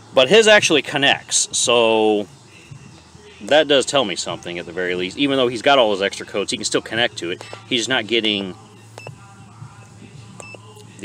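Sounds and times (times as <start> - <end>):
steady low hum: 0.0 - 11.0
high keypress beep: 9.0 - 9.2, 10.4 - 10.7.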